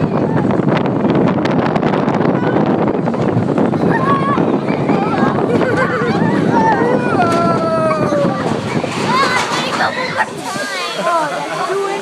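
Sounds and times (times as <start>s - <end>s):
roller coaster clicks and rattles: 0.0s - 11.3s
wind buffeting microphone: 0.0s - 12.0s.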